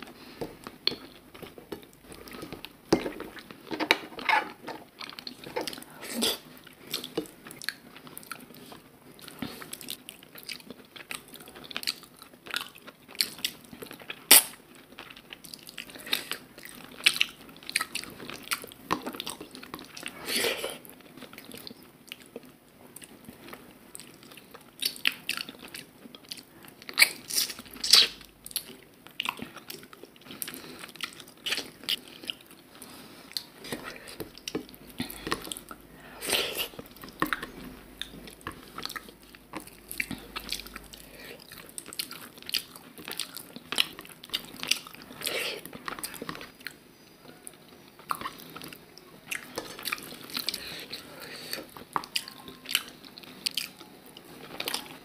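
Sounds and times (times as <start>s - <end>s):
chewing and wet mouth sounds: 0.0s - 55.0s.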